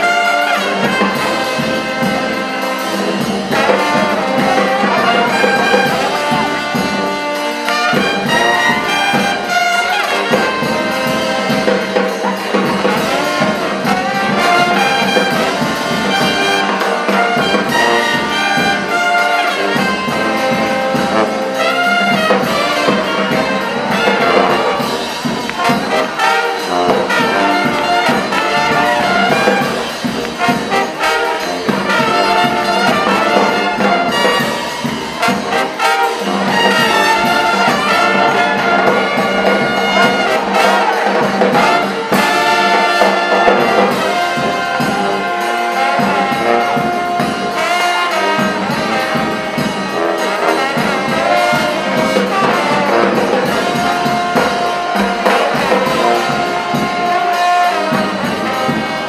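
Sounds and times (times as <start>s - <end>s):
brass band playing jazz: 0.0s - 59.0s.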